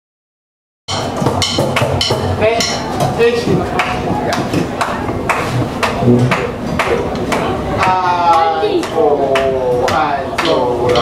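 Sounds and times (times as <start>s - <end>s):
drum kit hits: 0.9s - 7.0s
band playing: 0.9s - 7.8s.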